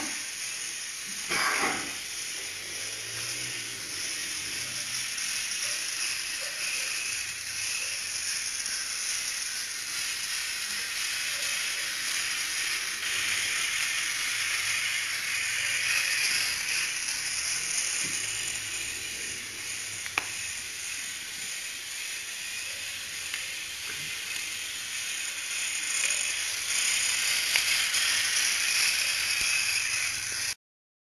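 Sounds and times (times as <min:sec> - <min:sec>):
robot gear motors whirring: 0:00.0 - 0:30.6.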